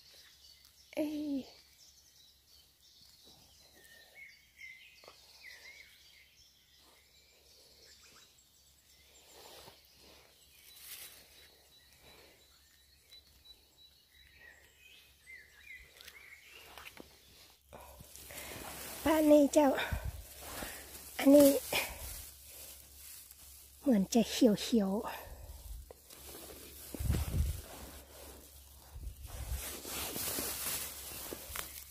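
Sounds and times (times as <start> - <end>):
songbirds chirping: 0.0 - 31.9
rustling of picking mushrooms: 2.4 - 31.9.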